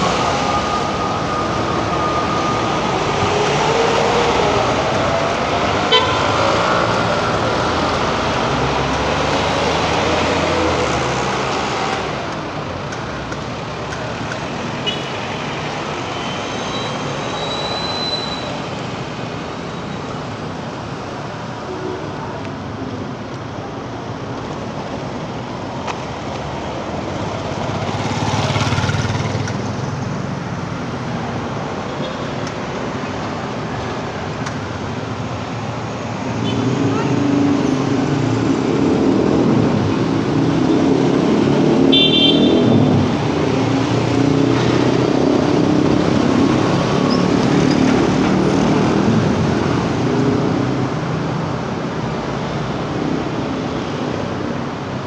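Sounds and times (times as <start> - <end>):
traffic driving past: 0.0 - 55.0.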